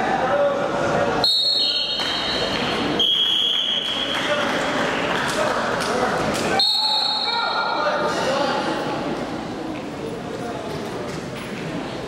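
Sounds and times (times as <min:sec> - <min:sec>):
referee's whistle blast: 0:01.2 - 0:04.0, 0:06.6 - 0:07.6.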